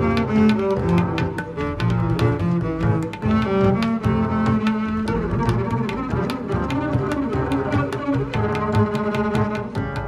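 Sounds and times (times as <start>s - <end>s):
bowed double bass music: 0.0s - 10.0s.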